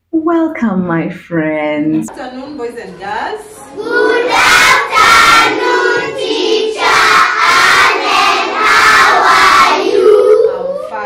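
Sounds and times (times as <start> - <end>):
children chanting in unison: 3.7 - 11.0.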